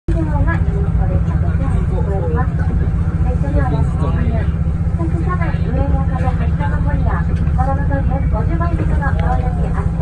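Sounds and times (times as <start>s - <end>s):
people talking: 0.1s - 10.0s
railcar engine and wheels rumbling: 0.1s - 10.0s.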